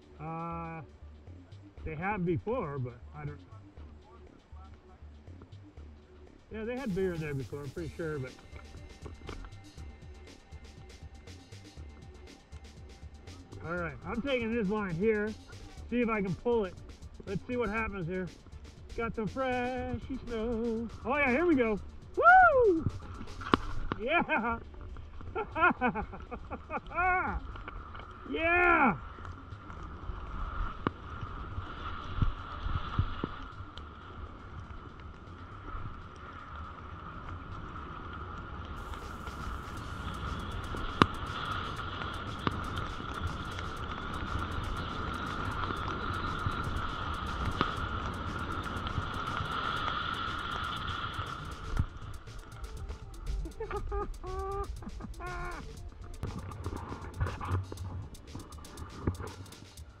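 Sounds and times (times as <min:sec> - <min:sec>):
steady whistling tone: 0:20.3 - 0:23.6
person shouting: 0:22.2 - 0:22.9, 0:54.2 - 0:55.7.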